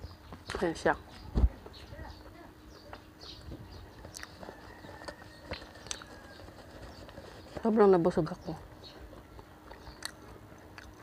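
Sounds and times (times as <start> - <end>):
faint chewing: 4.0 - 11.0.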